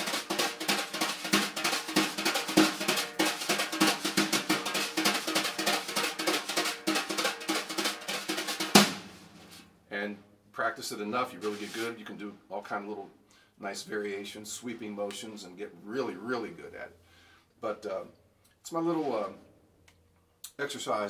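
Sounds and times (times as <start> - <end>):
brushes on snare drum: 0.0 - 9.7, 11.4 - 12.0.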